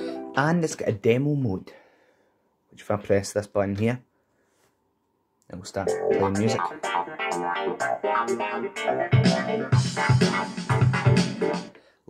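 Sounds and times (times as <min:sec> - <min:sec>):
electronic keyboard demo music: 0:00.0 - 0:00.5, 0:05.8 - 0:11.8.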